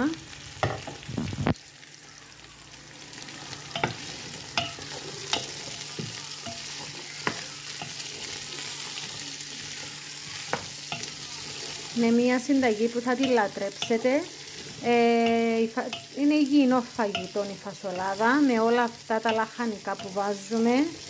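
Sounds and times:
vegetables sizzling in oil: 0.0s - 21.0s.

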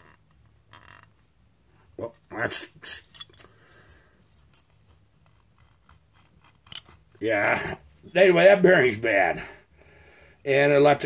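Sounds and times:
metal part scraping in hands: 2.8s - 3.6s, 4.2s - 7.0s.

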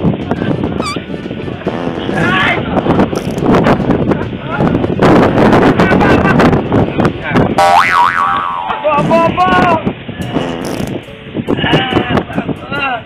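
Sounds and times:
comic springy boing: 0.8s - 1.0s, 7.6s - 8.8s.

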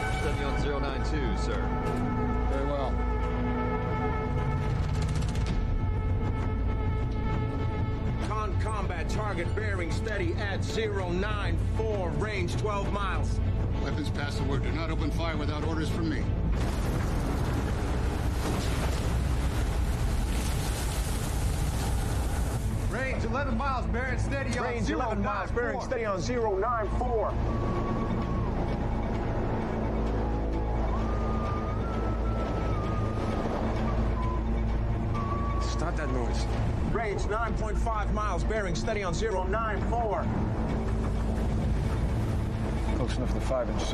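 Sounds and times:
deep continuous rumble: 3.3s - 43.9s
waves breaking against ship bow: 16.6s - 22.9s
wind and sea noise: 16.6s - 38.1s, 39.3s - 43.9s.

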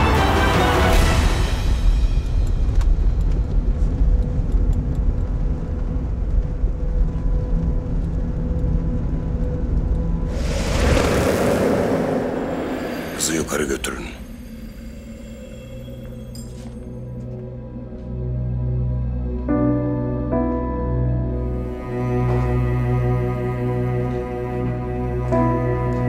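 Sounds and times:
whoosh: 10.3s - 15.2s.

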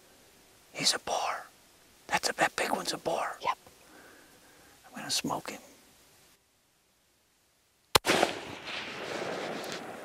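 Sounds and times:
rifle shot: 7.9s - 10.0s
rolling echo: 8.0s - 10.0s.

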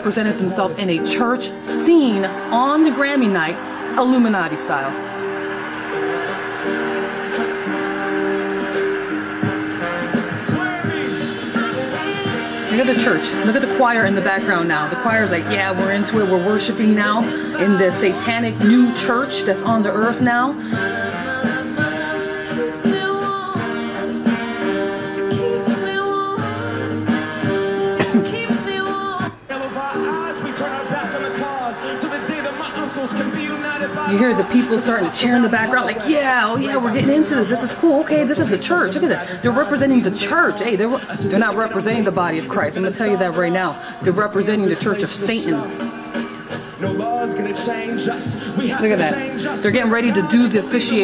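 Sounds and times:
live band playing held chords: 0.0s - 51.0s
woman singing slow melody: 11.6s - 29.4s.

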